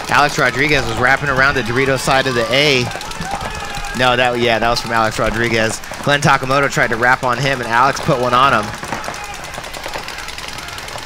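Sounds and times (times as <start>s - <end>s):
paintball markers firing: 0.0s - 11.0s.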